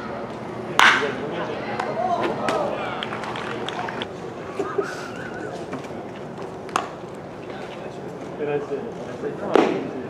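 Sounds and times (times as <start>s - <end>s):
background murmur: 0.0s - 10.0s.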